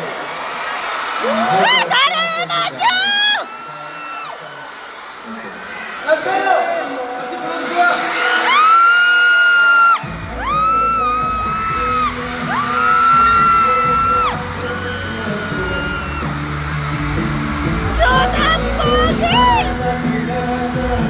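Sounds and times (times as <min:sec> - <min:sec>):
crowd yelling and whooping: 0:00.0 - 0:21.0
concert music over a pa: 0:07.4 - 0:21.0.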